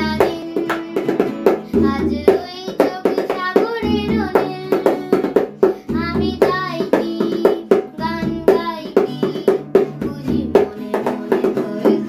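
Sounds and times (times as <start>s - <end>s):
child singing: 0.0s - 12.0s
strummed acoustic guitar: 0.0s - 12.0s.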